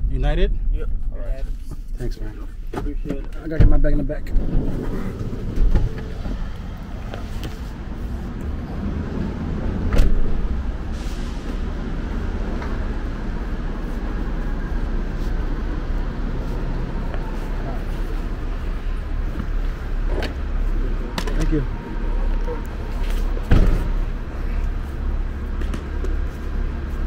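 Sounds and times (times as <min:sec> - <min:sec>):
van engine and road rumble: 0:00.0 - 0:27.0.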